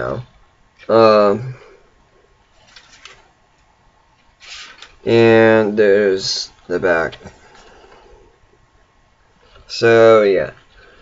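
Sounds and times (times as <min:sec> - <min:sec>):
soft paper crackles: 0:02.5 - 0:05.1
book pages turning: 0:02.6 - 0:03.3, 0:04.2 - 0:05.0.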